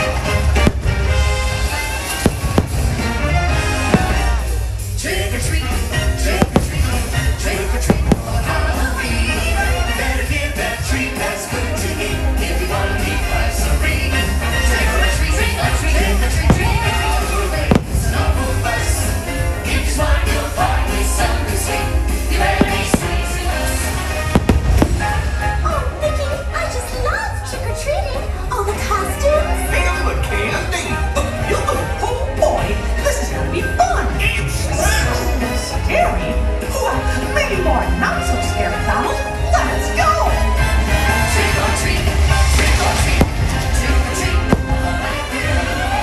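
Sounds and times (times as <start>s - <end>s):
fireworks bursting: 0.0s - 10.8s, 14.3s - 25.7s, 40.9s - 46.0s
loud show music: 0.0s - 46.0s
firework shells bursting: 0.5s - 4.8s, 6.4s - 8.5s, 16.5s - 18.4s, 22.6s - 25.4s
low rumble: 0.6s - 10.9s, 15.0s - 26.1s.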